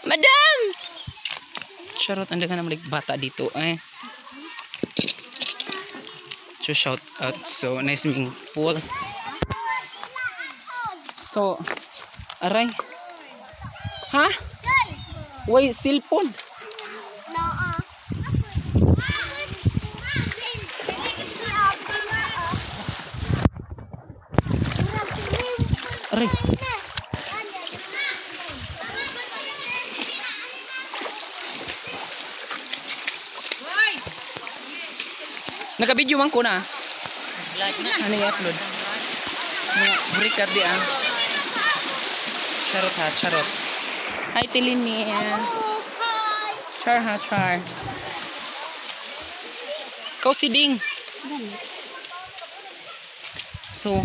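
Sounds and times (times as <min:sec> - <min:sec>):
water splashing and sloshing: 0:00.0 - 0:54.0
people talking: 0:12.4 - 0:22.7, 0:24.4 - 0:32.2, 0:37.5 - 0:43.6, 0:44.4 - 0:54.0
voices: 0:12.4 - 0:22.8, 0:24.4 - 0:54.0.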